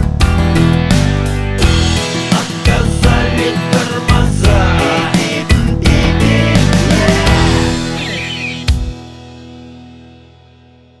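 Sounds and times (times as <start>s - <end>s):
guitar sustaining: 1.6s - 4.1s, 5.9s - 9.0s
rock band final chord ringing: 1.6s - 5.2s.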